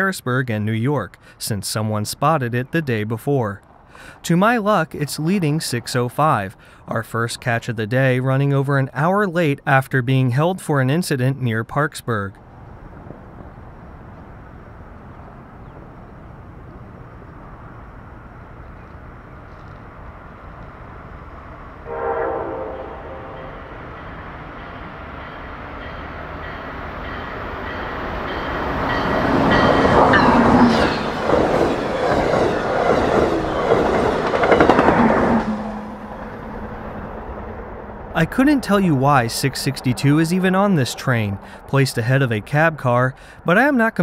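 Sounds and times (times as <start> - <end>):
passing train rumble: 12.3 - 44.0
train horn blast: 21.8 - 24.0, 35.2 - 36.7
train wheels clattering: 22.9 - 36.4.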